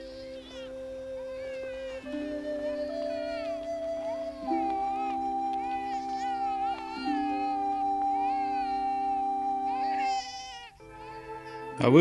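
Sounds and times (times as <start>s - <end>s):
newborn baby crying: 0.0s - 12.0s
held chord of background music: 10.8s - 12.0s.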